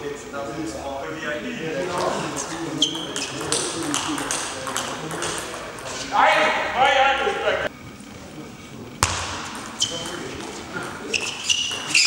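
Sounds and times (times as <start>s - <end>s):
table tennis ball hit by paddle: 3.2s - 5.6s.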